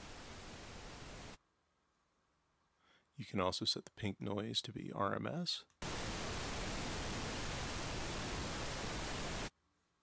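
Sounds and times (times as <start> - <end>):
pink noise hiss: 0.0 - 1.4, 5.8 - 9.5.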